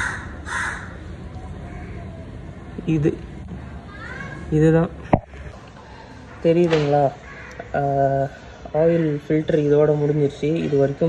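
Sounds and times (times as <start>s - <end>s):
crow cawing: 0.0s - 2.2s, 5.2s - 8.5s.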